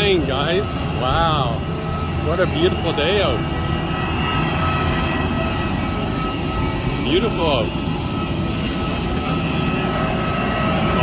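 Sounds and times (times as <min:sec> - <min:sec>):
jet airliner whine: 0:00.0 - 0:11.0.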